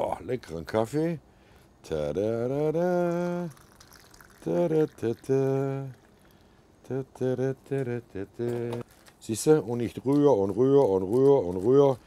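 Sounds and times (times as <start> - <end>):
coffee pouring into cup: 2.8 - 6.4
man singing held notes: 4.4 - 6.0, 6.8 - 12.0.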